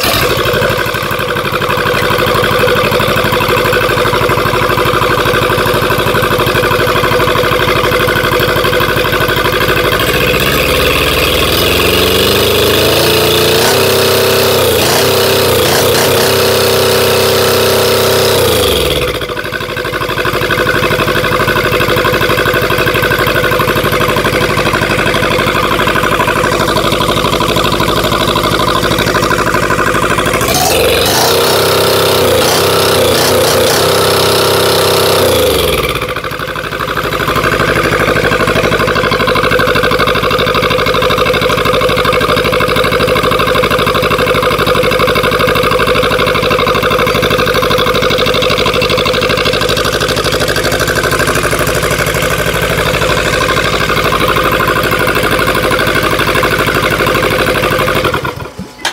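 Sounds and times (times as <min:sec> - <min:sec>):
diesel engine revving: 0:00.0 - 0:58.9.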